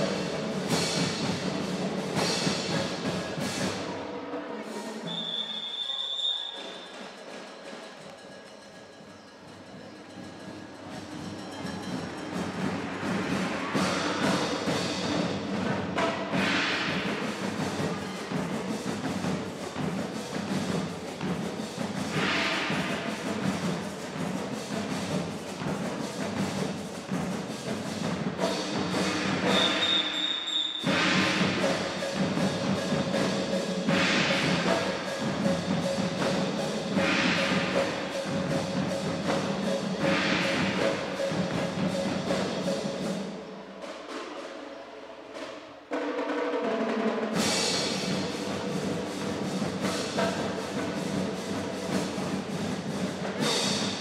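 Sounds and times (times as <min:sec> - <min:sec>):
drum cadence with bass drum: 0:06.6 - 0:44.5, 0:47.4 - 0:54.0.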